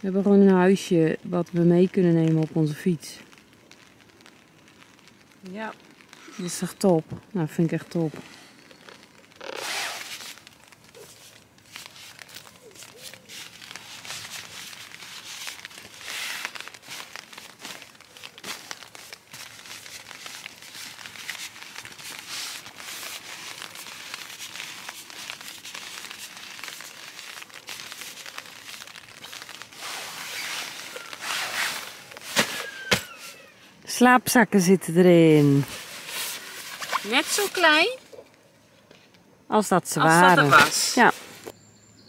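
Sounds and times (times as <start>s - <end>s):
fabric rustling and crinkling: 0.0s - 34.0s, 35.2s - 39.1s, 40.0s - 41.6s.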